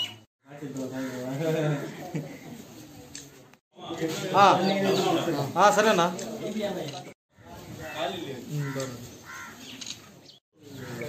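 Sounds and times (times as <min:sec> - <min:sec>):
people talking: 0:00.5 - 0:09.0.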